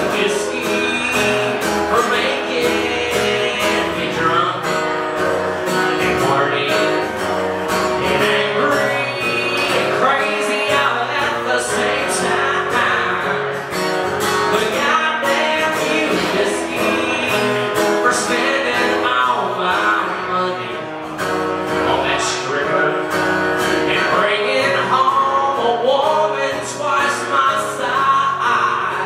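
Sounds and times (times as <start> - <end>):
acoustic guitar strumming: 0.0 - 29.0
man singing: 0.0 - 29.0.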